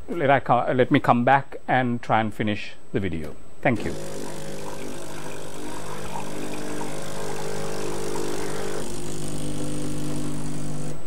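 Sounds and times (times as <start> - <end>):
coffee machine pump humming: 3.8 - 11.0.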